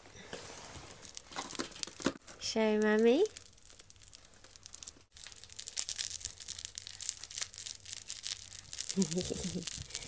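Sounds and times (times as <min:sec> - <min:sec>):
crinkling and rustling of toys: 0:00.0 - 0:10.0.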